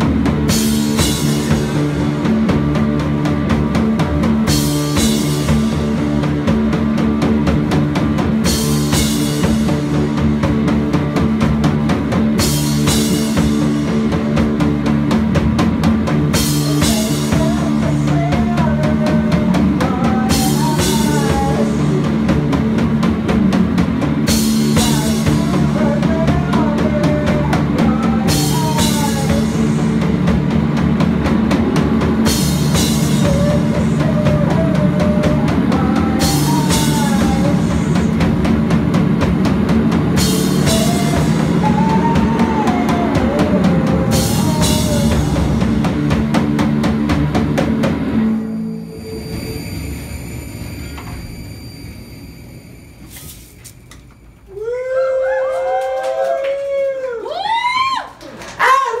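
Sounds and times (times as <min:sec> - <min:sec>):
live rock band playing: 0:00.0 - 0:50.4
ringing tones: 0:48.2 - 0:54.4.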